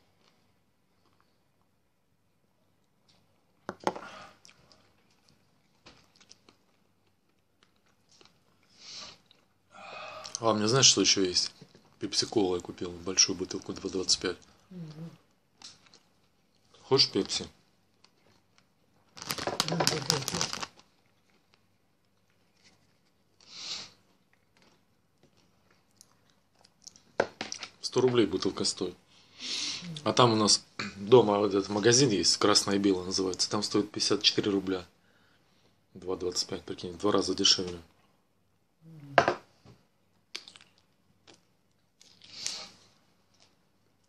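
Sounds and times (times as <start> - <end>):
rapid crinkling and clicking: 17.2 - 23.1
person speaking: 19.6 - 20.6, 27.8 - 34.7
wet chewing clicks: 40.3 - 42.3.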